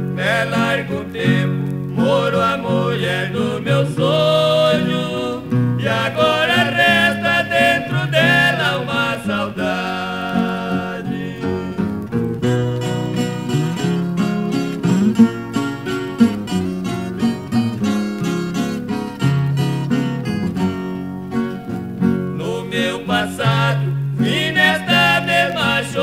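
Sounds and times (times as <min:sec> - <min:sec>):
plucked bass notes: 0:00.0 - 0:22.6
acoustic guitars picking melody: 0:00.0 - 0:26.0.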